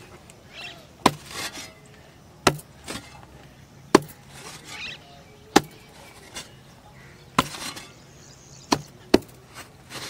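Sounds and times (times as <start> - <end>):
pickaxe striking dry soil: 1.0 - 1.8, 2.4 - 3.2, 3.9 - 4.8, 7.4 - 8.0, 8.7 - 10.0.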